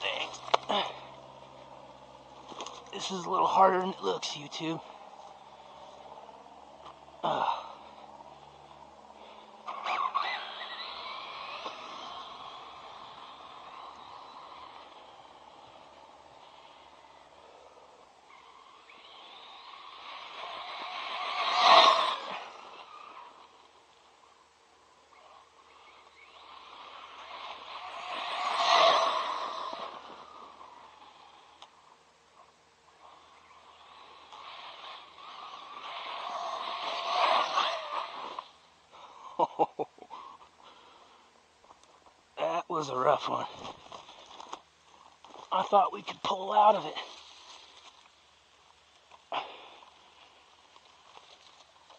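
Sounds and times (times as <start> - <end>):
toy truck electric motor whining: 5.2 - 23.8, 25.2 - 31.8, 33.0 - 39.1.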